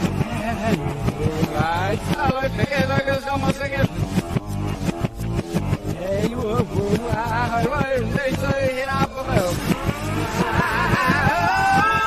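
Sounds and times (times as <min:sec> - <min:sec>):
reversed beat: 0:00.0 - 0:12.0
wavering reversed vocal line: 0:06.8 - 0:12.0.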